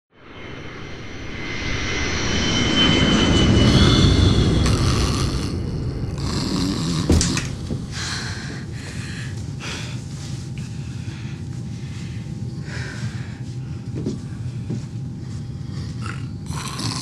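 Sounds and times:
airliner cabin drone: 0:00.1 - 0:17.0
jet engines whining: 0:00.2 - 0:16.5.

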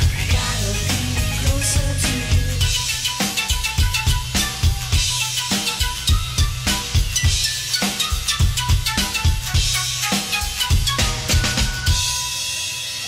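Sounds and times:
drum kit beat: 0:00.0 - 0:13.0
live band music: 0:00.0 - 0:13.0.

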